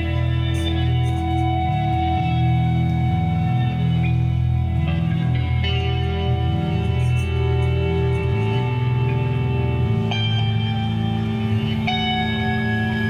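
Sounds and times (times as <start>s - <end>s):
electric bass low notes: 0.0s - 13.0s
electric guitar sustained chords: 0.0s - 13.0s.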